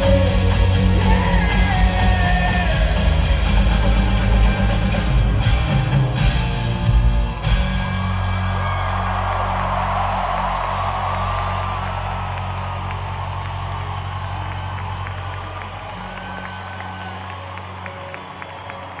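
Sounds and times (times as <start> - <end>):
crowd cheering and applauding: 0.0 - 19.0
crowd whistles: 12.7 - 19.0.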